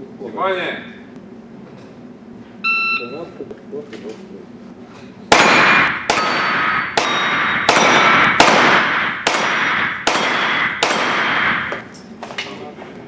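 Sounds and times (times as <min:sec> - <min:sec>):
metallic ring of steel targets: 0:05.3 - 0:11.9
rifle shots with echo: 0:05.3 - 0:11.9.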